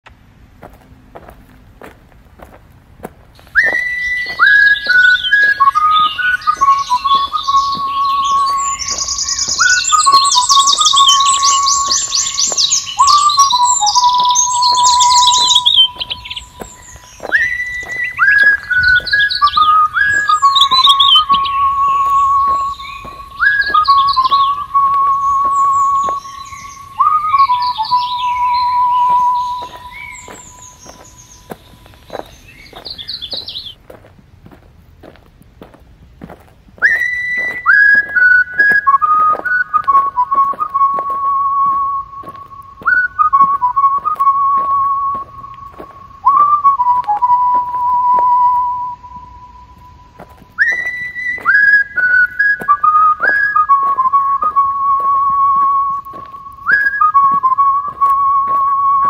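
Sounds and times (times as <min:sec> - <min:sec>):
whistle-like lead melody: 0:03.5 - 0:33.8, 0:36.8 - 0:59.0.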